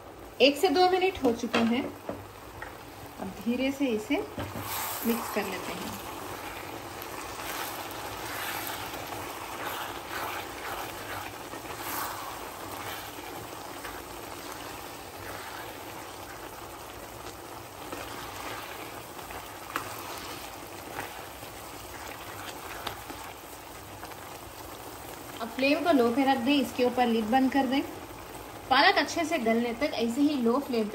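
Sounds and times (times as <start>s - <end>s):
spinach sizzling in a pan: 0.0s - 30.9s
spatula stirring: 4.4s - 24.3s.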